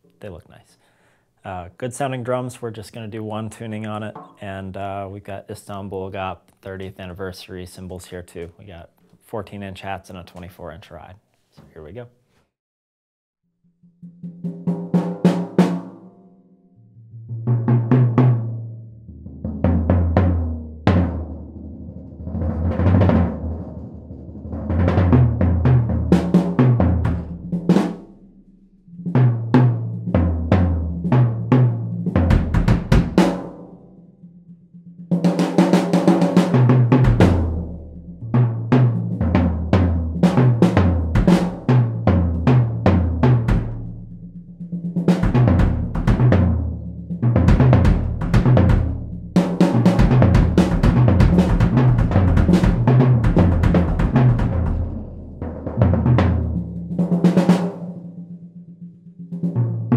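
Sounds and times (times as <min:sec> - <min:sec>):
toms and bass drum with mallets: 0:02.8 - 0:05.0, 0:24.6 - 0:28.1, 0:29.1 - 0:33.5, 0:36.1 - 0:57.1.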